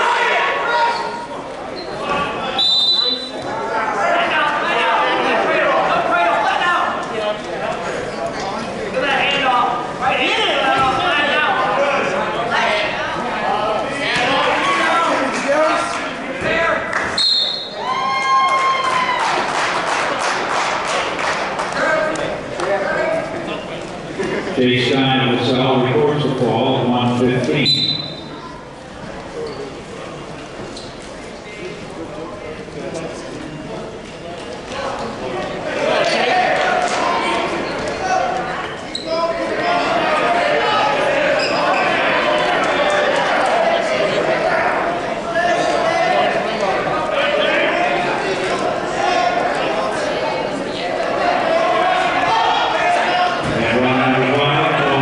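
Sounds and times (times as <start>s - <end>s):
indistinct chatter echoing: 0.0s - 55.0s
voices shouting in a hall: 0.0s - 55.0s
referee's whistle blast: 2.6s - 3.4s, 17.2s - 17.8s, 27.6s - 28.3s.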